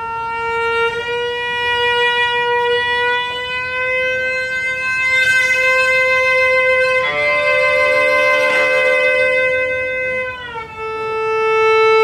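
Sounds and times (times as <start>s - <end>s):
cello bowed high held note: 0.0s - 12.0s.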